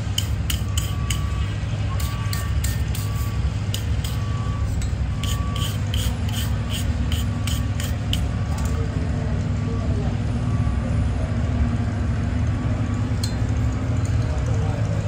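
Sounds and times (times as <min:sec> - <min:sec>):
wire brush scrubbing iron: 0:00.0 - 0:01.3, 0:02.0 - 0:04.2, 0:05.2 - 0:08.3.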